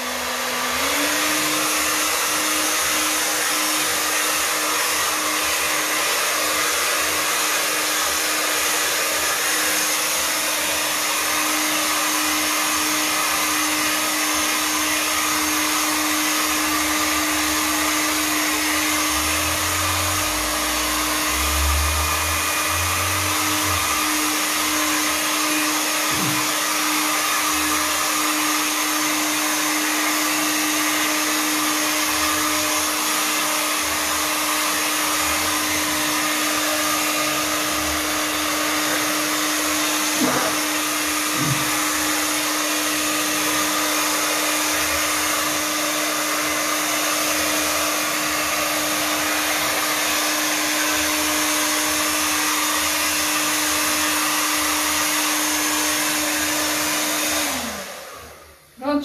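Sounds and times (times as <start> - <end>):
hair dryer running: 0.0 - 59.0.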